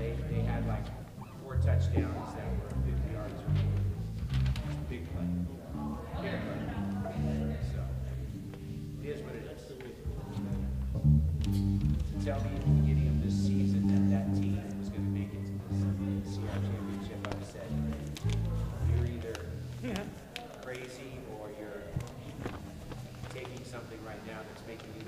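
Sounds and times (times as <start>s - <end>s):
bass and guitar low notes: 0.0s - 20.2s
indistinct talking: 0.0s - 25.0s.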